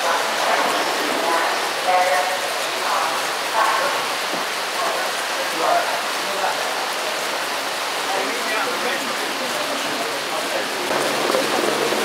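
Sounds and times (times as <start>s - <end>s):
faint voices: 0.0s - 12.0s
heavy rain falling: 0.0s - 12.0s.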